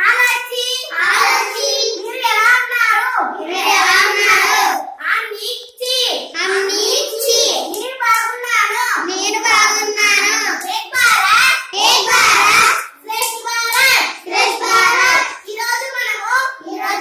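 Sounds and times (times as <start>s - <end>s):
children chanting phrases: 0.0s - 17.0s.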